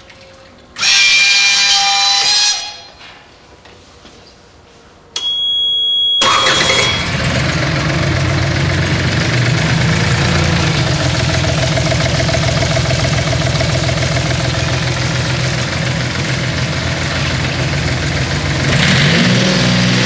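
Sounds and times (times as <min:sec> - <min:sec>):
steady high beep: 0:05.2 - 0:07.1
diesel outboard motor starting: 0:06.2 - 0:20.0.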